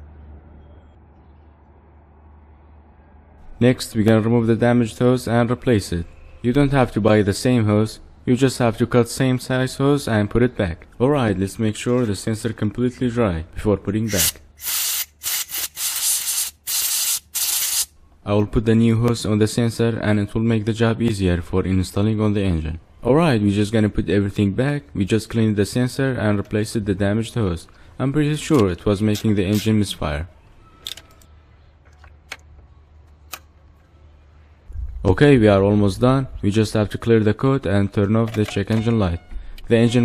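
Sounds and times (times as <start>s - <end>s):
faint low hum: 0.0s - 14.6s, 17.9s - 40.0s
compressed air blasts hissing: 14.1s - 17.9s.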